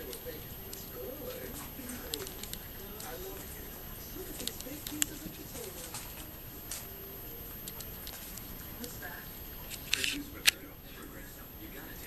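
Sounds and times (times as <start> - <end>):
sharp click: 9.7 - 10.6.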